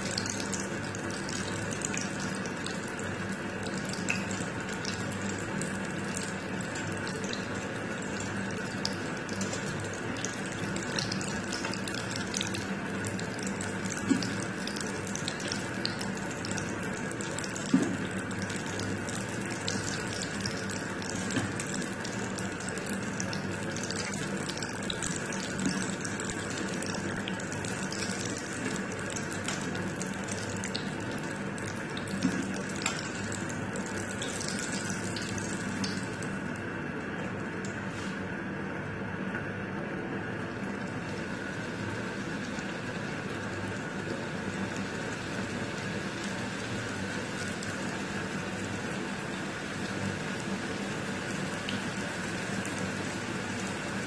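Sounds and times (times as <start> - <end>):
low steady hum: 0.0 - 54.0
hot oil sizzling and crackling: 24.2 - 36.3.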